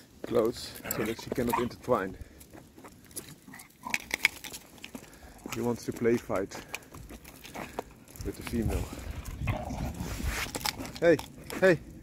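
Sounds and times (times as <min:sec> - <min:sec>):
dogs scuffling at play: 0:02.5 - 0:11.7.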